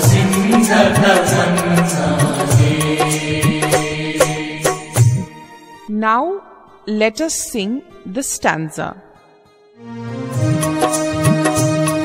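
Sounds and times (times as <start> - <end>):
percussion beat: 0.0 - 5.3
held drone chord: 0.0 - 5.8.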